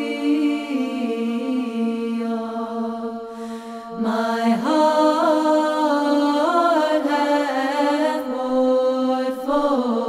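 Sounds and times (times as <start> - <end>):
voices chanting a melody: 0.0 - 10.0
breathy hiss: 3.3 - 4.1.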